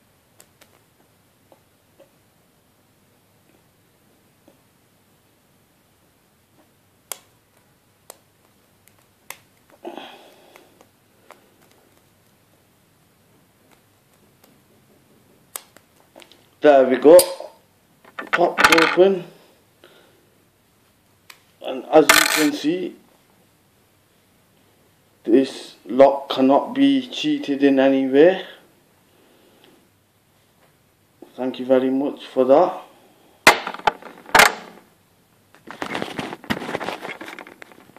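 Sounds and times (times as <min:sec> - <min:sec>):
clattering and rustling handling: 0:18.0 - 0:19.1, 0:33.5 - 0:34.9, 0:35.5 - 0:37.9
scraping rustle: 0:35.6 - 0:37.9.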